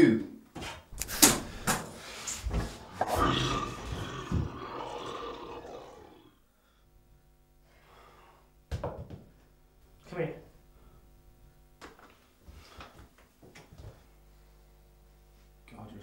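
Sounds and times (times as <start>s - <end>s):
harsh roar-like noise: 2.9s - 6.4s.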